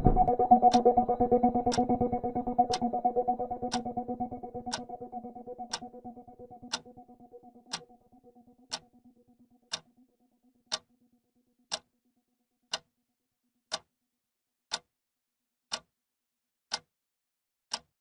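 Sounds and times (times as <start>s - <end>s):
clock ticking: 0.0s - 1.0s, 3.7s - 3.9s, 4.7s - 4.9s, 5.6s - 6.0s, 6.7s - 6.9s, 7.7s - 7.9s, 8.7s - 8.9s, 9.7s - 9.9s, 10.7s - 10.9s, 11.7s - 11.9s, 12.7s - 12.9s.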